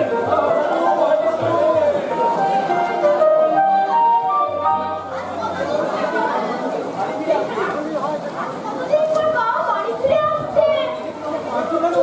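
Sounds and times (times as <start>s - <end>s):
music with long held notes: 0.0s - 5.5s
voices talking in echoing hall: 0.0s - 12.0s.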